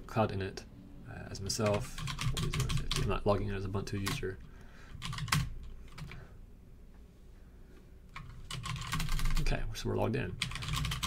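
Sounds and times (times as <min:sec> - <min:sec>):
computer keyboard typing: 0:01.6 - 0:06.2, 0:08.1 - 0:09.5, 0:10.4 - 0:11.0.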